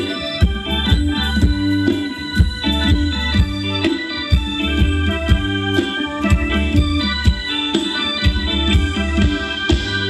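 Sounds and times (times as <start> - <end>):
electronic keyboard melody: 0.0 - 10.0
steady drum beat: 0.0 - 10.0.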